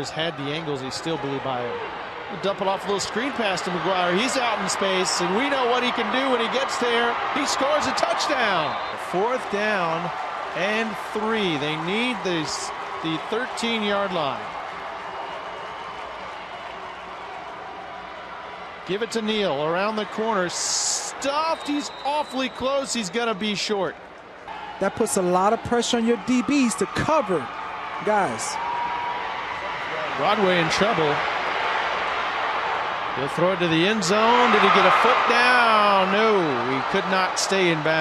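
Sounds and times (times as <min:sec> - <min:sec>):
stadium crowd noise: 0:00.0 - 0:38.0
commentator speaking: 0:24.8 - 0:28.6.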